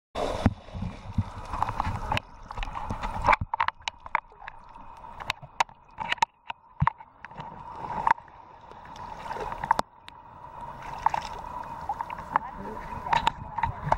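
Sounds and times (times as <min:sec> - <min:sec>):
shallow water lapping: 0:00.2 - 0:13.9
small water splashes: 0:00.2 - 0:13.9.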